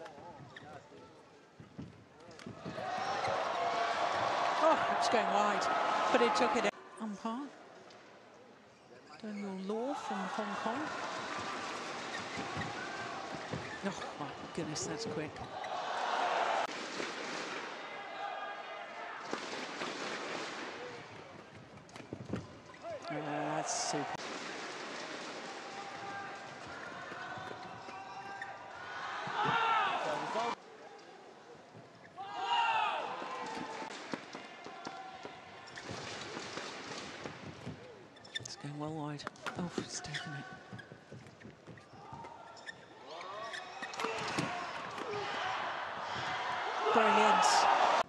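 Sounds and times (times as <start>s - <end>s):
crowd noise: 1.2s - 7.2s, 9.8s - 37.4s, 41.9s - 48.0s
crowd shouts: 2.6s - 6.7s, 15.4s - 16.7s, 17.7s - 19.3s, 25.5s - 30.6s, 32.2s - 33.9s, 43.4s - 48.0s
cheering and applause: 2.7s - 6.8s, 10.0s - 12.0s, 15.5s - 16.7s, 28.8s - 30.6s, 44.5s - 48.0s.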